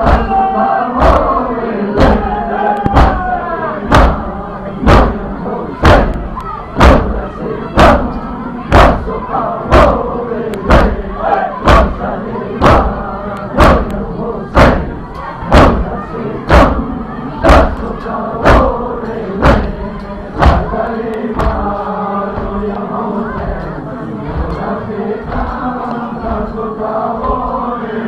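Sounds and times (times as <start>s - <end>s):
men chanting in unison: 0.0s - 28.0s
rhythmic chest-beating thuds: 0.0s - 28.0s
voices: 0.0s - 28.0s.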